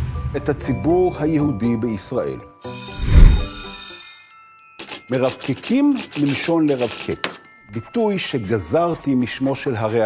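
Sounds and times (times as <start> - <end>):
shimmering chime: 2.6 - 4.8
typewriter-style clicks: 4.8 - 7.4.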